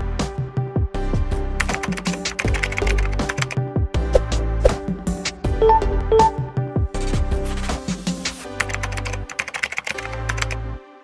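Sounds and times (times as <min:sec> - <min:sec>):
background music with steady bass: 0:00.0 - 0:11.0
keyboard typing clicks: 0:01.6 - 0:03.6, 0:08.6 - 0:10.6.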